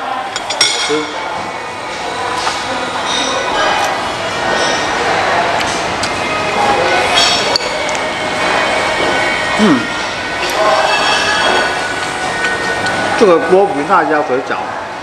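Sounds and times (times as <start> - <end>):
indistinct voices: 0.0 - 15.0
dishes and cutlery clinking: 0.2 - 1.5, 2.3 - 5.0, 7.0 - 8.0, 10.0 - 13.0
man humming mm while eating: 9.6 - 10.0.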